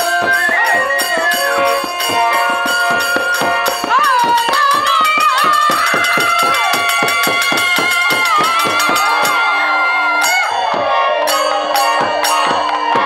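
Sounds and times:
harmonium: 0.0s - 10.4s
woman singing: 0.0s - 10.6s
drums beaten in fast rhythm: 0.0s - 13.0s
jingling hand cymbals: 0.0s - 13.0s.

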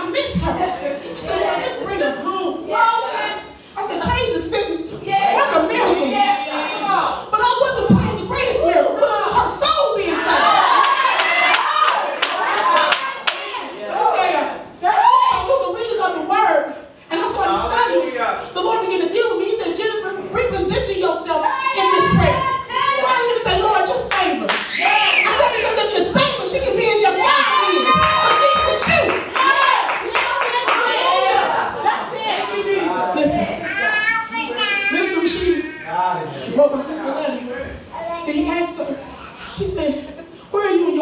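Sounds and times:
congregation calling out: 0.0s - 41.0s
congregation clapping: 10.3s - 13.7s, 23.8s - 25.6s, 27.3s - 31.4s
voices calling out: 17.1s - 36.6s.

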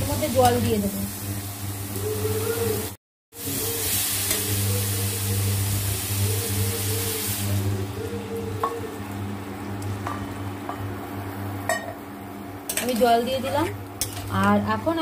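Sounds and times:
food sizzling in a pan: 0.0s - 15.0s.

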